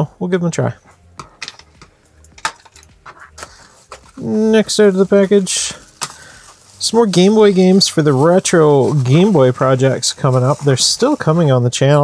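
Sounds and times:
metal tools clinking: 0:01.2 - 0:04.3.

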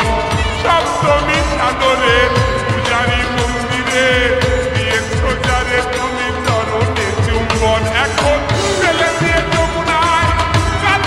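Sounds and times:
deep steady drum beat: 0:00.0 - 0:11.0
slowed reverb song with melody: 0:00.0 - 0:11.0.

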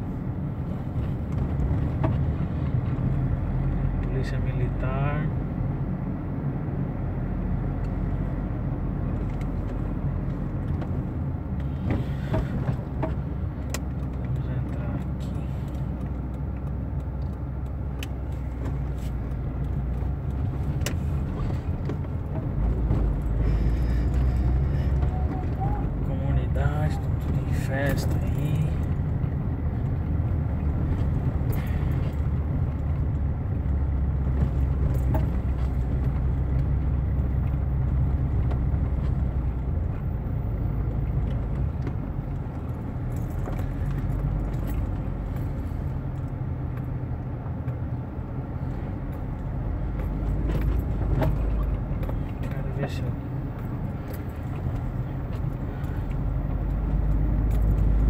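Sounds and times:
engine and road rumble: 0:00.0 - 0:58.0
rattles and clicks inside car: 0:00.0 - 0:58.0.

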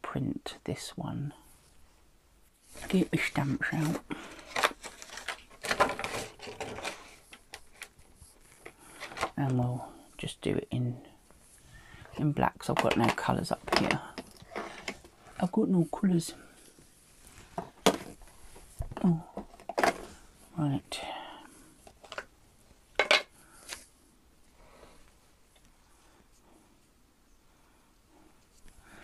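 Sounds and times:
light rummaging: 0:02.7 - 0:09.6, 0:11.8 - 0:15.5, 0:16.5 - 0:20.5, 0:21.7 - 0:23.9
craft supplies clattering: 0:02.8 - 0:07.3, 0:12.6 - 0:15.1.

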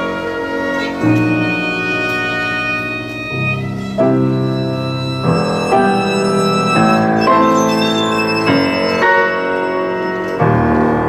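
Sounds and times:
piano chords ringing: 0:00.0 - 0:11.0
violin holding a line: 0:00.0 - 0:11.0.

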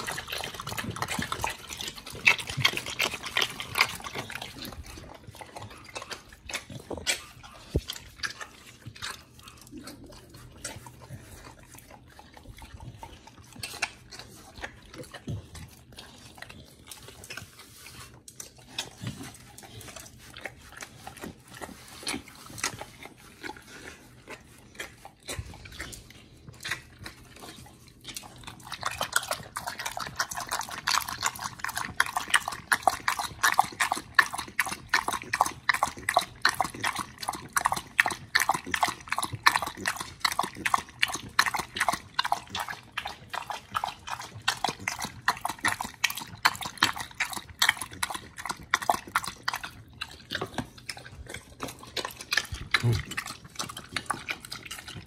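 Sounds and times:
dog lapping water: 0:00.0 - 0:55.0.

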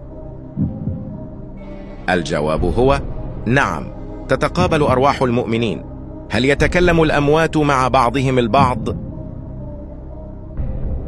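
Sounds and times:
deep heartbeat-like thump: 0:00.5 - 0:01.7.

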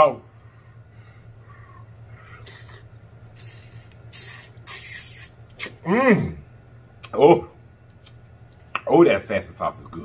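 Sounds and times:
mouth slurping and sucking: 0:02.2 - 0:05.8.

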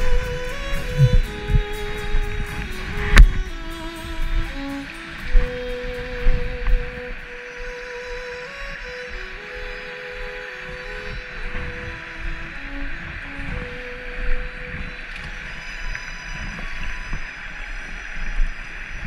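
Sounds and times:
low thumps: 0:00.0 - 0:07.2
soft background music: 0:00.0 - 0:19.0.

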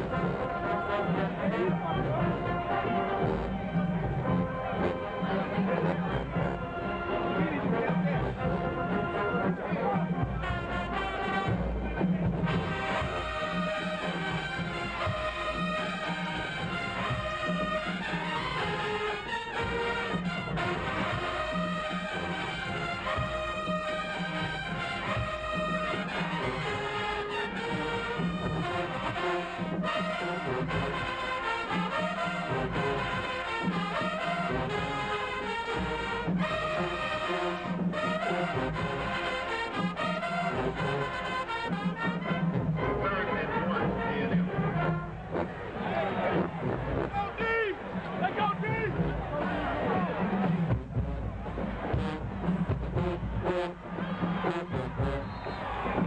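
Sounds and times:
marching band brass and drums: 0:00.0 - 0:56.0.

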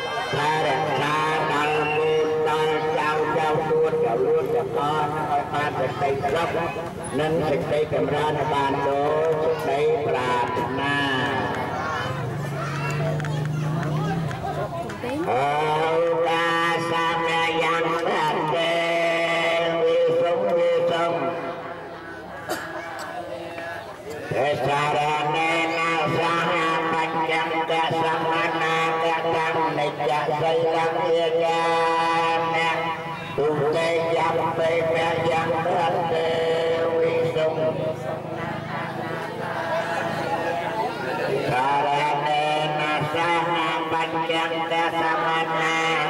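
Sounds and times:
voice chanting through a microphone: 0:00.0 - 0:46.0.

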